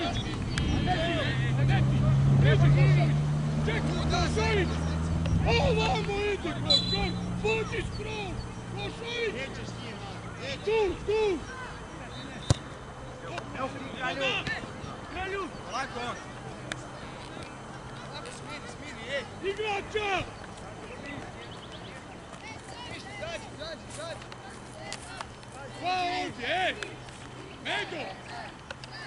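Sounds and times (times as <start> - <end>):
players calling and shouting: 0.0 - 29.0.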